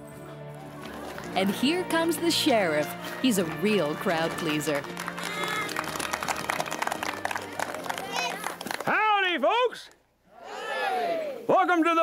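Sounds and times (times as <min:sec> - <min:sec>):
music playing: 0:00.0 - 0:08.8
crowd noise: 0:00.0 - 0:09.0
pitched cry: 0:05.2 - 0:05.8.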